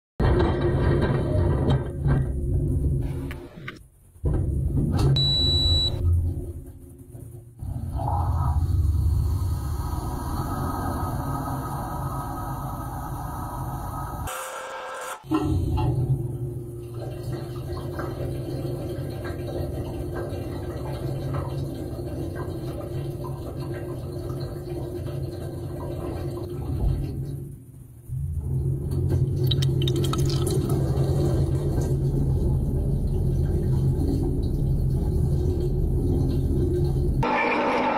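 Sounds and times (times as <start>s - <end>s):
dishwasher pump rumbling: 15.2s - 27.5s, 28.1s - 37.9s
water running in: 29.2s - 37.2s
water spattering: 29.3s - 32.3s.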